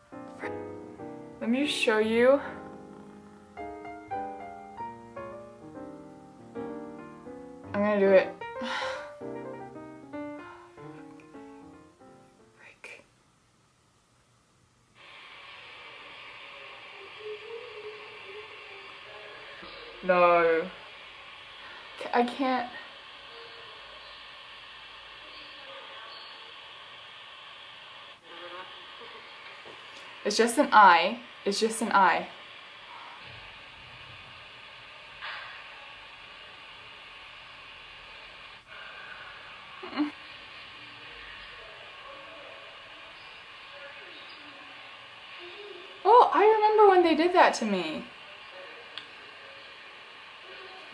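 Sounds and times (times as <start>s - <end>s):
piano music: 0.0s - 12.7s
steady hiss: 0.0s - 50.9s
person breathing sharply: 8.6s - 9.2s
person gasping: 8.6s - 9.2s
faint voice: 15.5s - 21.0s, 25.1s - 27.1s, 28.2s - 29.8s, 39.8s - 46.6s, 47.9s - 50.9s.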